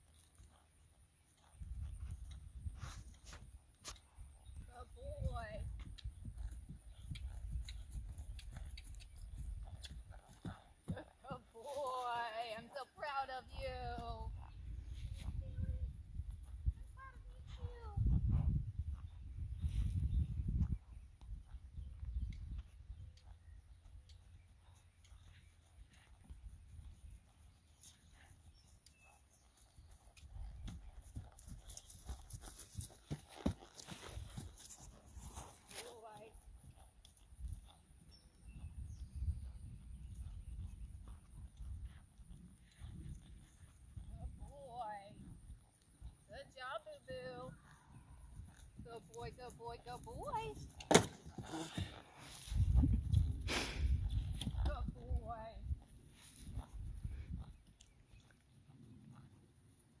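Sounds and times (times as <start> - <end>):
hoofbeats of horse cantering: 0.0 - 60.0.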